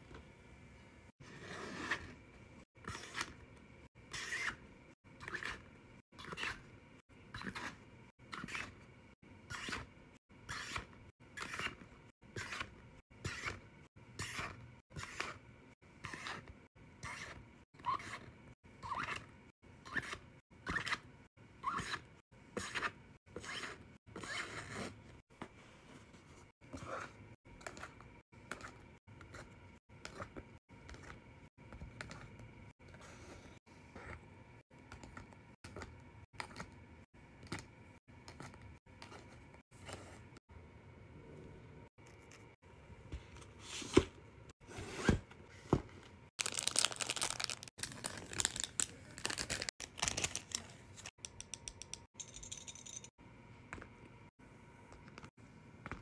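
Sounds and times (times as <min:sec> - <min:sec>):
packaging crinkling and rustling: 0:46.4 - 0:51.1.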